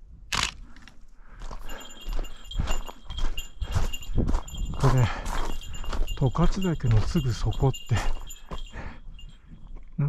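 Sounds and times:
footsteps crunching on gravel: 0.4s - 9.8s.

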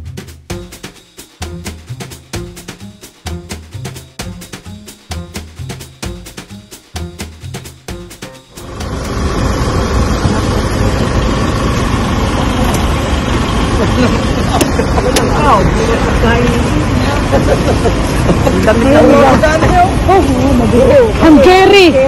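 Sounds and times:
traffic noise: 0.0s - 22.0s.

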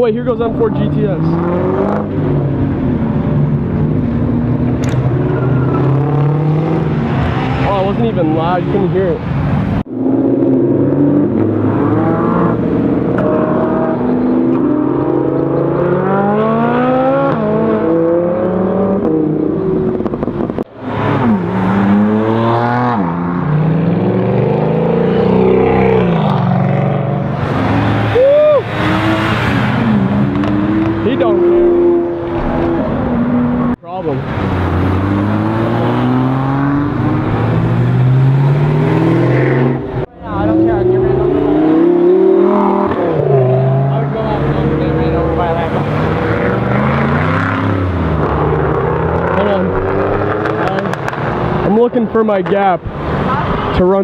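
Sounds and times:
sports cars accelerating hard: 0.1s - 54.0s.

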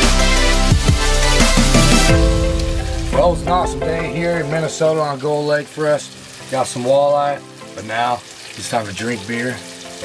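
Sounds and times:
background music: 0.0s - 10.0s
fish sizzling in hot oil: 0.0s - 10.0s
man speaking: 3.0s - 6.0s.

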